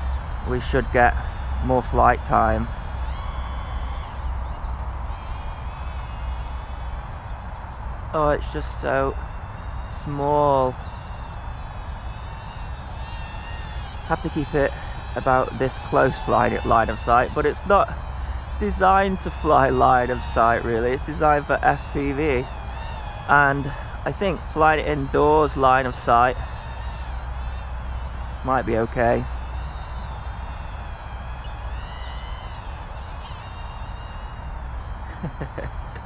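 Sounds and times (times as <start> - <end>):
micro drone buzzing whine: 0.0 - 36.0
steady low rumble: 0.0 - 36.0.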